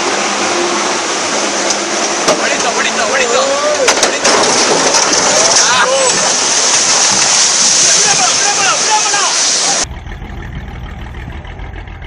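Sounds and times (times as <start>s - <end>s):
truck running on road: 0.0s - 12.0s.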